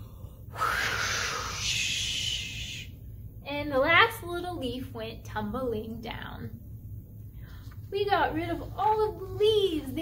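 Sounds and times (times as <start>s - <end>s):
woman blowing a breathy whoosh: 0.5s - 2.9s.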